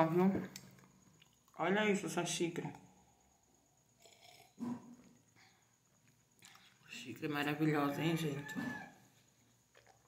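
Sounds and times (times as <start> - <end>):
person slurping coffee: 4.0 - 4.9.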